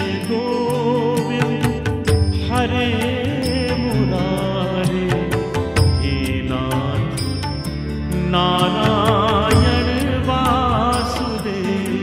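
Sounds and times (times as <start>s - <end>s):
steady percussive beat: 1.2s - 12.0s.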